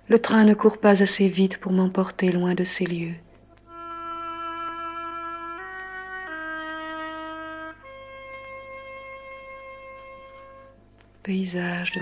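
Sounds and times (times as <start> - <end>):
wind instrument playing long notes: 3.6 - 10.9, 11.5 - 12.0.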